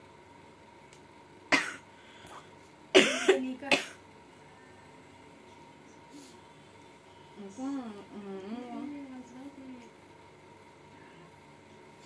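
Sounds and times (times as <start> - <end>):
woman coughing: 1.5 - 1.8, 3.0 - 4.0.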